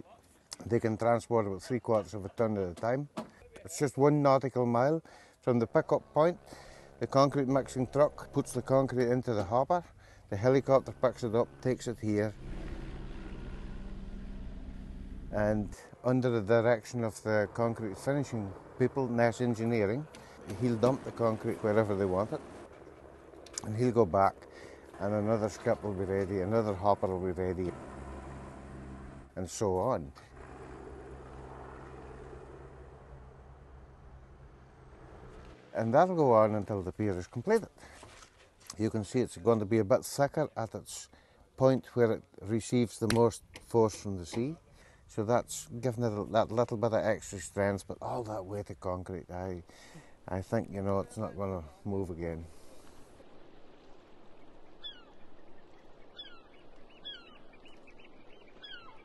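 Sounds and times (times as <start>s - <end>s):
helicopter running: 5.4s - 36.2s
birds calling: 52.5s - 59.0s.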